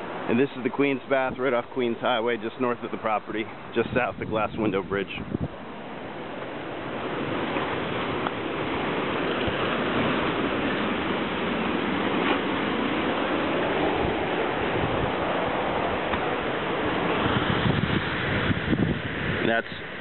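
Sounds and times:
ocean surf breaking on rocks: 0.0s - 20.0s
wind on microphone: 2.6s - 20.0s.

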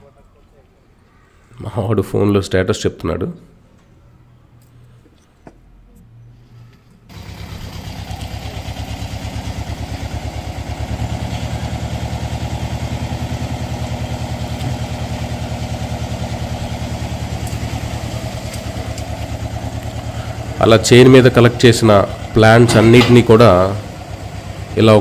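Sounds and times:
tractor engine running: 7.1s - 25.0s.

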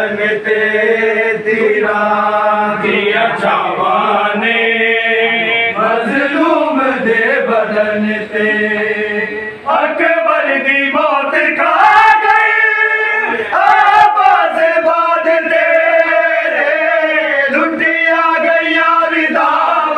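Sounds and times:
group of men chanting: 0.0s - 19.9s.

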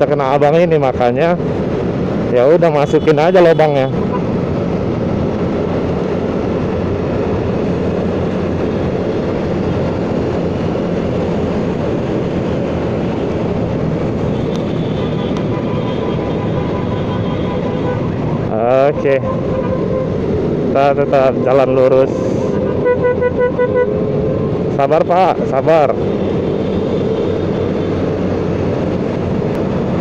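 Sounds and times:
wind rush: 0.0s - 2.9s, 3.8s - 30.0s
road noise: 0.0s - 30.0s.

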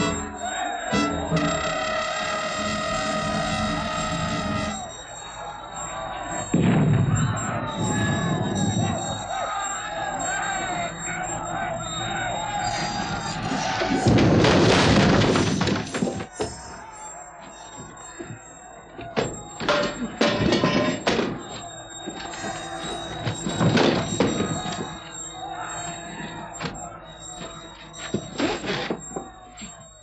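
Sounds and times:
music of long held notes: 0.0s - 5.3s
many voices shouting: 0.0s - 30.0s
sudden loud crash: 6.5s - 8.6s.

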